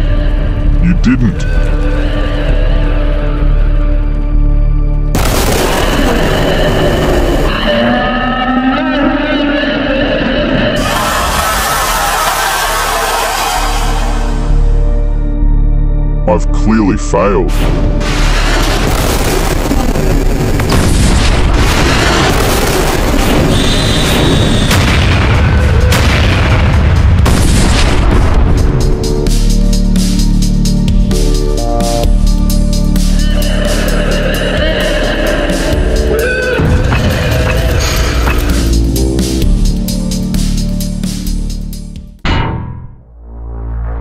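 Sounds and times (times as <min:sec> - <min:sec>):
music: 0:00.0 - 0:44.0
explosions rumbling with sharp bangs: 0:05.1 - 0:07.5, 0:17.6 - 0:28.9.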